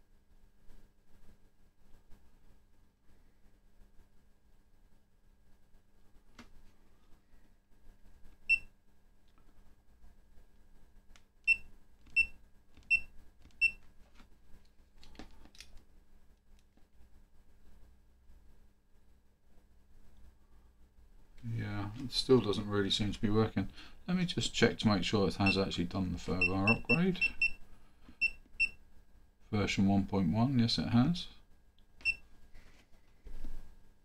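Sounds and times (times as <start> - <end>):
high-pitched key beeps: 26.4 - 27.6.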